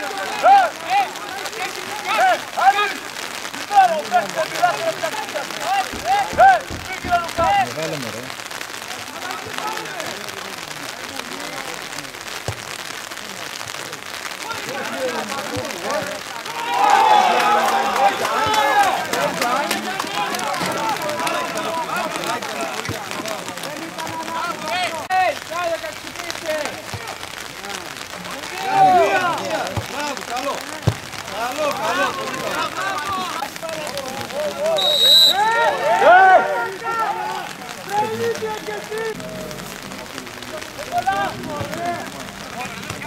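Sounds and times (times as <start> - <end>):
people talking and calling out: 0.0 - 43.0
rain pattering: 0.0 - 43.0
sharp knock: 5.9 - 7.6
referee's whistle blast: 34.7 - 35.7.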